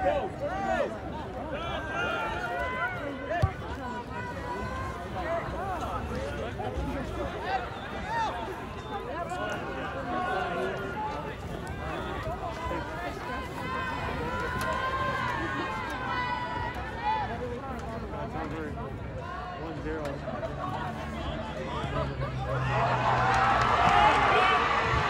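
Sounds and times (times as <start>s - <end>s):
crowd shouting and cheering: 0.0s - 25.0s.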